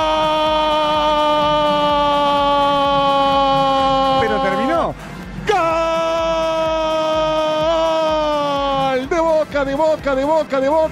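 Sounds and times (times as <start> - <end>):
commentator shouting: 0.0 - 10.9.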